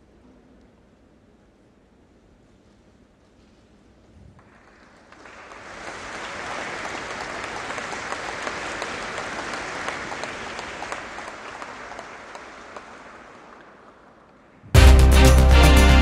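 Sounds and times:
audience applauding: 4.4s - 14.1s.

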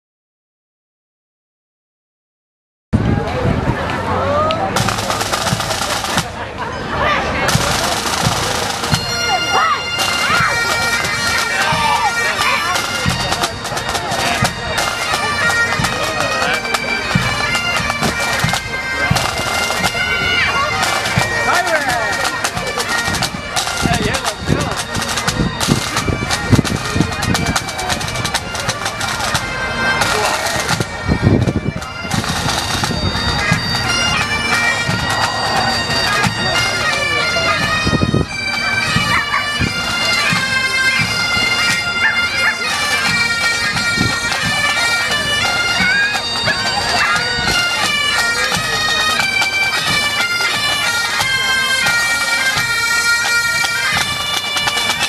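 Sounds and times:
drums beating: 3.0s - 55.0s
bagpipes melody over drones: 4.0s - 55.0s.

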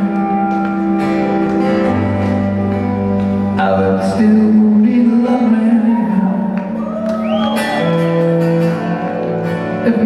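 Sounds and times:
live band instrumental music: 0.0s - 10.0s.

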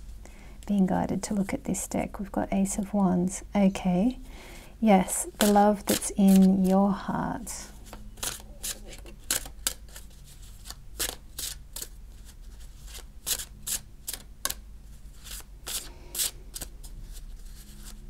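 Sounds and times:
cards being shuffled: 5.4s - 6.8s, 7.8s - 18.0s.

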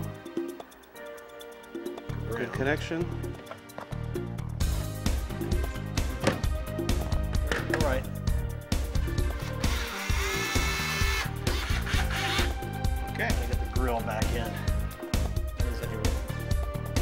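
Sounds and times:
background music with steady beat: 0.0s - 17.0s
cordless drill running: 9.4s - 12.5s.

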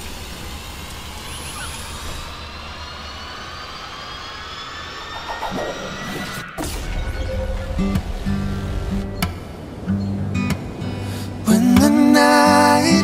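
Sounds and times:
whooshing rush with rising tones: 0.5s - 10.0s.

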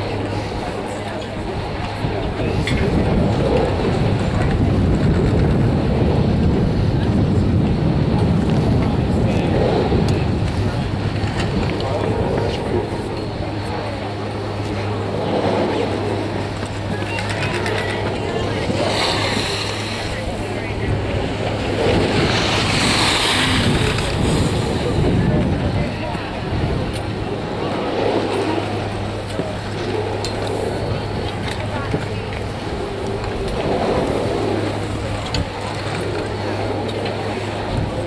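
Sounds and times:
background voices: 0.0s - 38.0s
chairlift rumbling: 0.0s - 38.0s
steady low hum: 0.0s - 38.0s.

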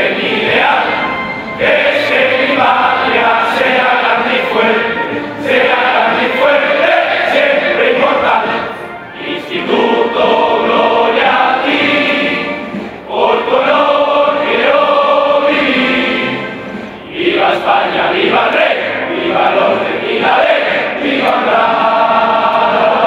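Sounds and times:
group singing a slow hymn: 0.0s - 23.0s.

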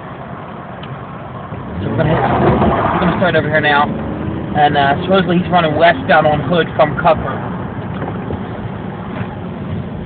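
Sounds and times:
traffic noise inside car: 0.0s - 10.0s.

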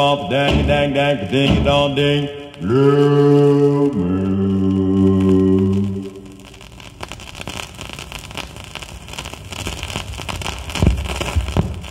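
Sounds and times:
doo-wop vocal chord: 0.0s - 6.4s
low thump: 0.3s - 2.0s
record surface crackle and hiss: 1.9s - 11.9s.

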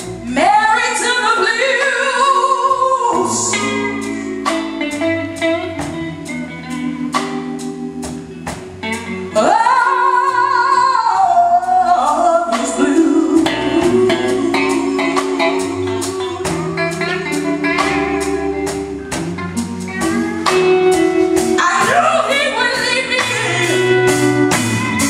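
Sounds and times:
blues band playing: 0.0s - 25.0s
woman belting vocals: 9.2s - 24.2s.

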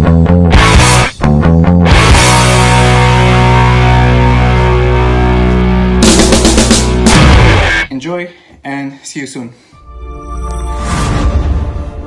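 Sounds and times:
distorted electric guitar chord: 1.9s - 7.9s.

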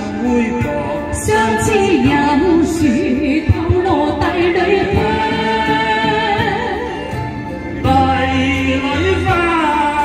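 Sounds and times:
opera singing: 0.0s - 7.2s
instrumental accompaniment: 0.0s - 10.0s.

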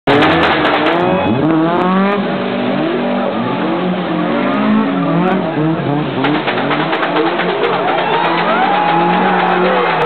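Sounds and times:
rally car engines revving: 0.1s - 10.0s.

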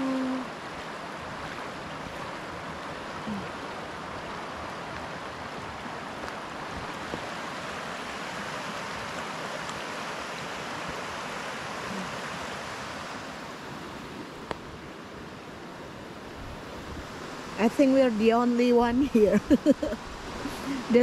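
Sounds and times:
creek running over gravel: 0.0s - 21.0s.

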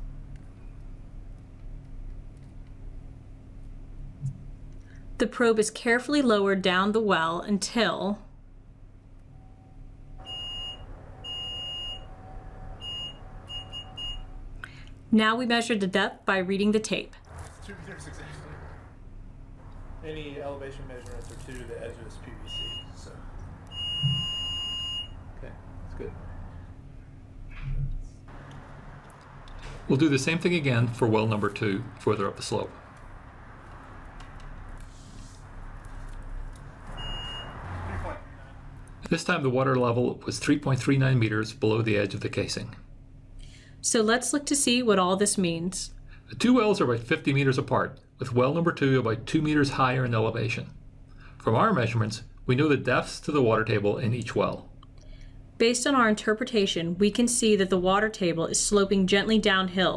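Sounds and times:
faint background noise: 0.0s - 59.9s
high-pitched electronic beeps: 9.4s - 12.1s, 12.8s - 14.4s, 22.5s - 23.0s.

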